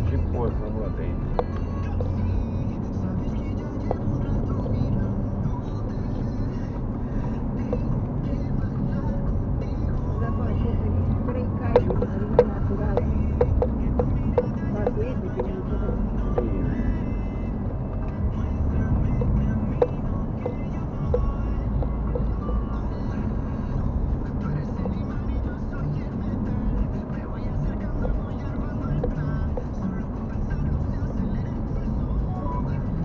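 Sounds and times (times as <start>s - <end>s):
car engine and road rumble: 0.0s - 33.0s
music: 0.0s - 33.0s.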